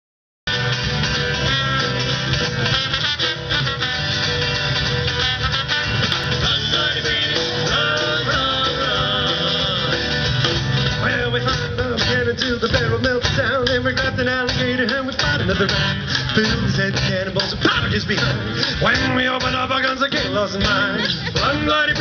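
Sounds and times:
rock band playing: 0.5 - 22.0
trombone lead: 0.5 - 22.0.

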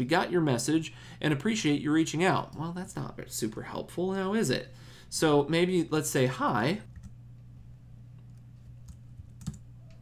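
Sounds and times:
steady low hum: 0.0 - 10.0
computer keystrokes: 8.8 - 9.6.

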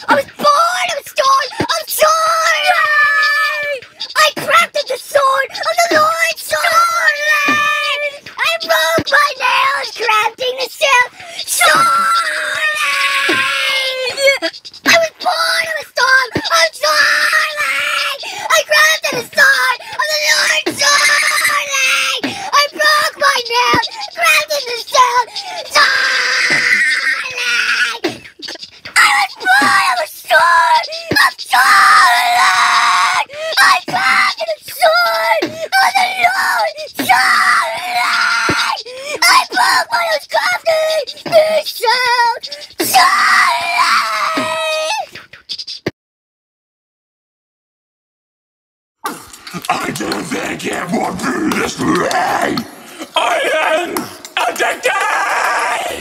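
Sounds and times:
person wailing and screaming: 5.2 - 8.1, 10.9 - 28.0, 29.0 - 45.0, 49.1 - 56.0.

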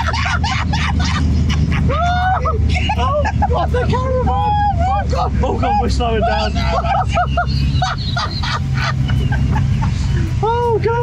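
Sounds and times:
high shrieks of laughter: 0.0 - 3.7, 4.5 - 10.1
car engine and tyres rumbling: 0.0 - 11.0.

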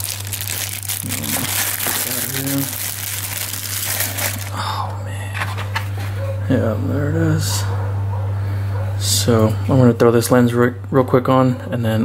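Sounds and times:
plastic bag crinkling: 0.0 - 4.6.

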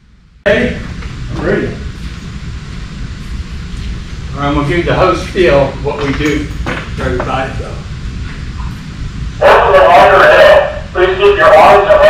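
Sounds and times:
loudspeaker announcement voice: 0.5 - 1.9, 9.4 - 12.0.

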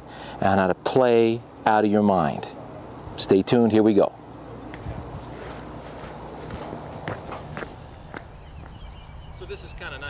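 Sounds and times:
footsteps walking away: 4.7 - 9.0.

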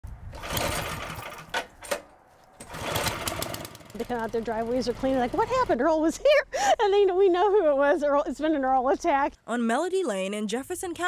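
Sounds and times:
recoil starter whirring rattle: 0.3 - 5.9.

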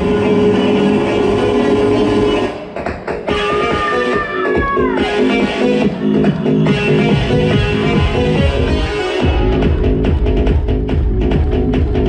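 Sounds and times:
sustained synth chords: 5.0 - 12.0.

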